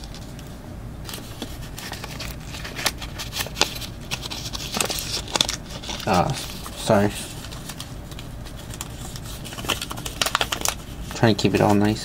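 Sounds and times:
cards clicking and rustling: 0.0s - 12.0s.

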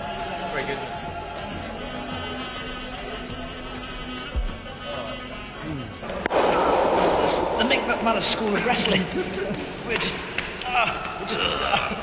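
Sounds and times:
background music: 0.0s - 12.0s
loud steady rushing noise: 6.0s - 10.5s
sharp crack: 6.0s - 11.2s.

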